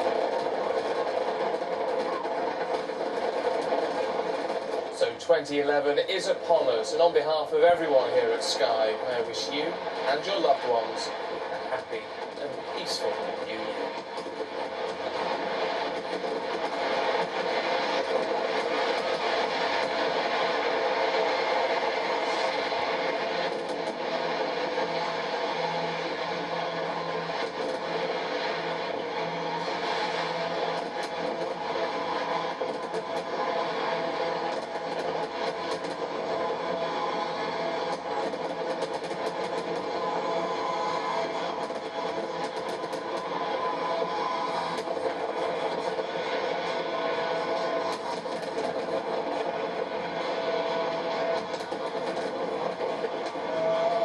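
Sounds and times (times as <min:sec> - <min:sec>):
fireworks crackling and banging: 0:00.0 - 0:54.0.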